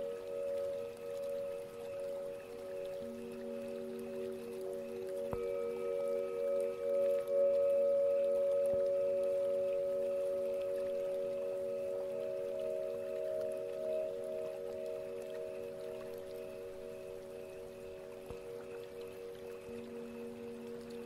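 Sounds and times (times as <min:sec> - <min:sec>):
singing bowls ringing: 0:00.0 - 0:21.0.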